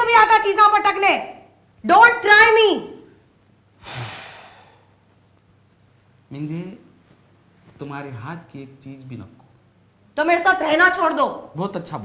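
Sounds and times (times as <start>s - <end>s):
person sighing heavily: 3.8s - 4.9s.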